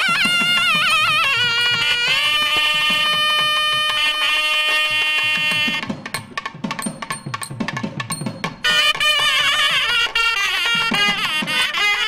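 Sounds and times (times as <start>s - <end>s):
nadaswaram long note: 0.0s - 6.0s, 8.6s - 12.0s
tavil drum quick strokes: 0.0s - 12.0s.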